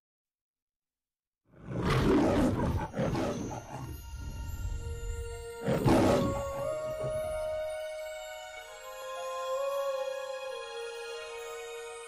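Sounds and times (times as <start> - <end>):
lion roaring: 1.6 - 4.4, 5.6 - 7.2.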